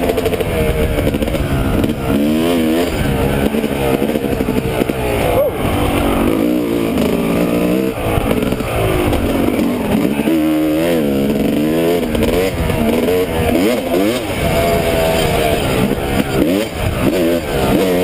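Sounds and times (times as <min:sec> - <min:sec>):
dirt bike engine revving: 0:00.0 - 0:18.0.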